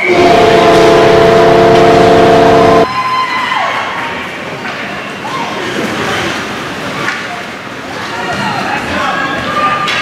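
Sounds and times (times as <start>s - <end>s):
goal horn blast: 0.0s - 2.9s.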